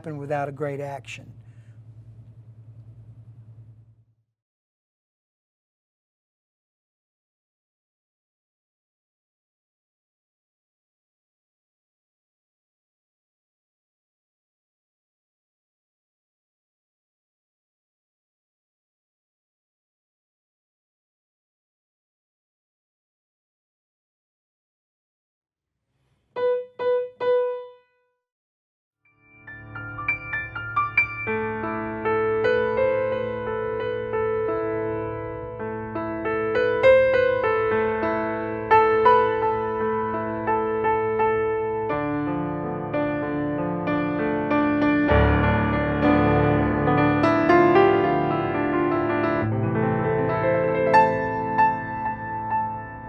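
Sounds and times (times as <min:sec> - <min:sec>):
low fluttering hum: 0:00.0 - 0:04.2
piano note struck: 0:29.4 - 0:41.4.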